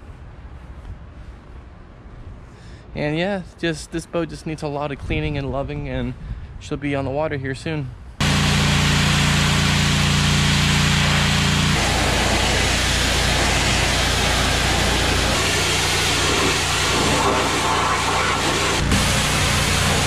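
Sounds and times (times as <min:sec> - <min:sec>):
high-pressure water spray hissing: 0:08.2 - 0:20.0
pressure washer motor hum: 0:08.2 - 0:20.0.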